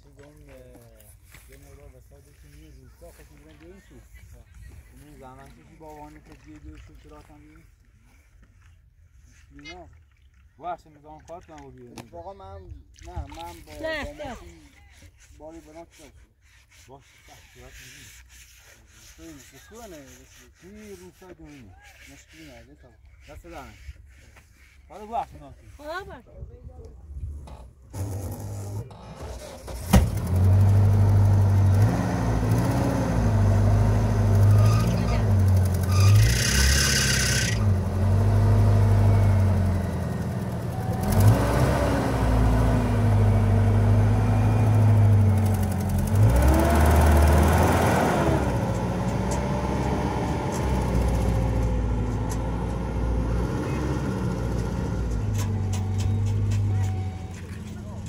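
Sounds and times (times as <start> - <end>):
truck engine starting and revving: 27.4 - 58.0.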